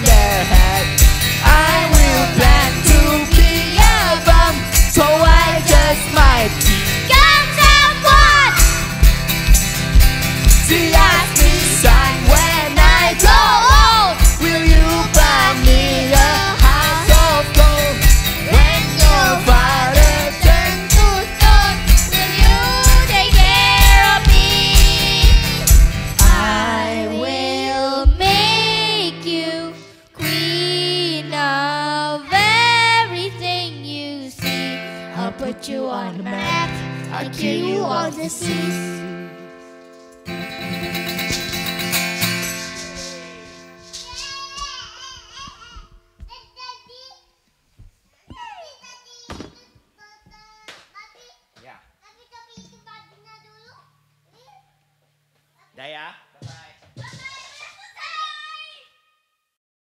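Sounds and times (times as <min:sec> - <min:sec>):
person singing: 0:00.0 - 0:08.7, 0:10.6 - 0:39.5
acoustic guitar: 0:00.0 - 0:46.2, 0:52.5 - 0:54.5
child singing along: 0:01.4 - 0:08.7, 0:10.7 - 0:17.9, 0:18.5 - 0:39.2, 0:44.0 - 0:47.2
excited children's voices: 0:07.0 - 0:08.8, 0:44.0 - 0:47.4, 0:48.3 - 0:54.8, 0:57.0 - 0:59.0
child's high call: 0:44.1 - 0:47.3, 0:48.3 - 0:51.4, 0:52.1 - 0:54.8, 0:57.0 - 0:59.2.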